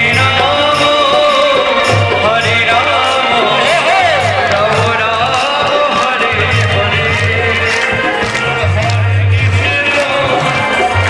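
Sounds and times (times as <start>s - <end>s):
sharp percussive strikes: 0.0s - 11.0s
voices singing devotional music: 0.0s - 11.0s.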